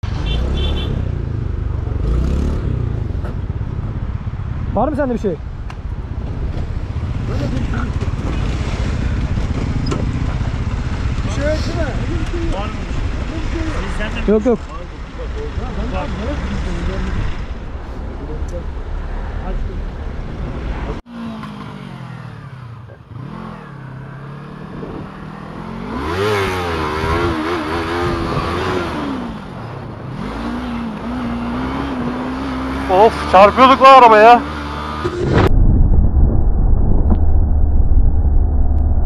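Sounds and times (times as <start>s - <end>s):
motorcycle engine revving: 0.0s - 5.0s, 5.8s - 17.6s, 20.6s - 35.5s
noisy rumble: 1.0s - 21.1s, 35.0s - 39.0s.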